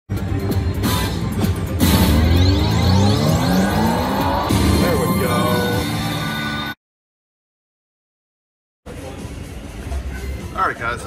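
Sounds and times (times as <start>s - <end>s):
slot machine electronic music: 0.1s - 6.8s.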